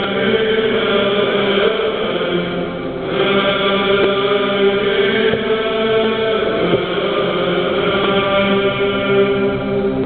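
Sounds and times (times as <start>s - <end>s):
choir singing a cappella: 0.0s - 10.0s.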